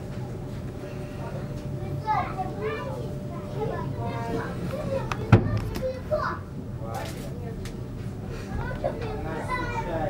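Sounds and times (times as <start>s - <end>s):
train carriage hum: 0.0s - 10.0s.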